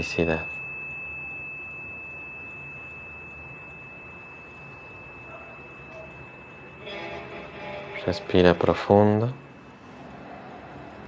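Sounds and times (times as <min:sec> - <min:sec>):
thin high-pitched tone: 0:00.0 - 0:10.8
fuller sound with several pitches: 0:00.0 - 0:11.0.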